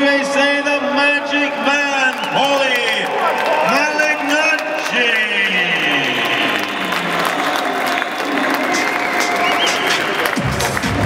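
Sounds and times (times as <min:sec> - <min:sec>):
crowd applauding and cheering: 0:00.0 - 0:11.0
heavy bass beat: 0:08.7 - 0:11.0.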